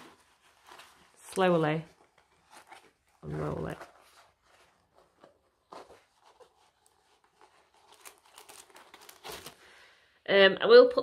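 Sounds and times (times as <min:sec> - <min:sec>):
canvas and paper rustling: 0:00.0 - 0:09.8.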